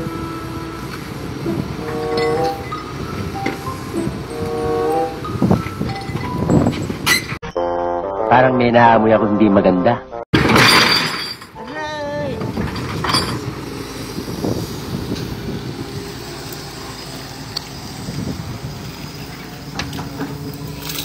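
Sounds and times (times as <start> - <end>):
diesel engine running: 0.0 - 7.4, 11.9 - 21.0
wavering voice: 11.6 - 12.5.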